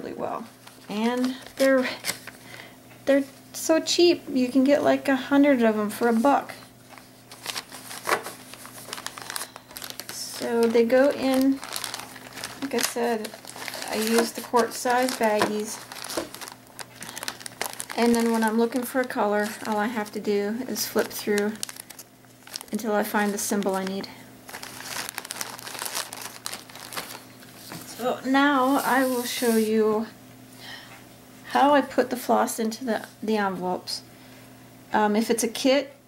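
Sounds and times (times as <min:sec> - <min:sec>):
plastic bag crinkling: 0:00.5 - 0:02.5, 0:06.3 - 0:28.0
paper envelopes rustling: 0:00.5 - 0:02.6, 0:06.0 - 0:28.0.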